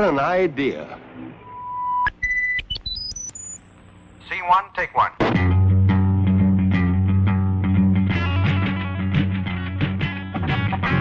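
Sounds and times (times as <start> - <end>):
electronic beep rising in pitch: 1.4 - 4.3.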